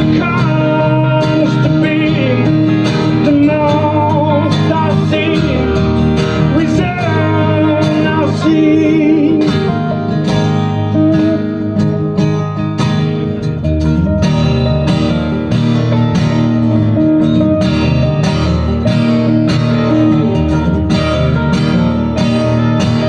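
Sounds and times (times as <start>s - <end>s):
acoustic guitar strumming: 0.0s - 23.0s
electric guitar melody: 0.0s - 23.0s
upright double bass: 0.0s - 23.0s.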